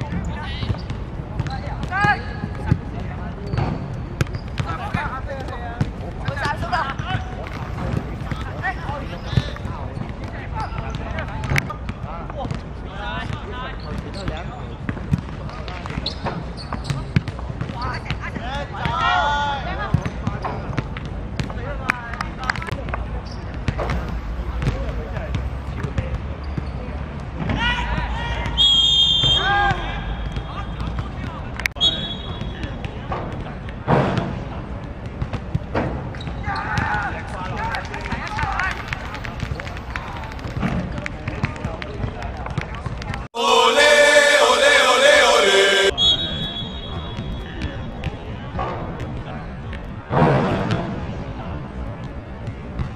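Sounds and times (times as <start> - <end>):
referee whistle blasts: 28.6 - 29.6, 31.8 - 32.5, 43.4 - 47.5
players shouting: 43.4 - 46.2.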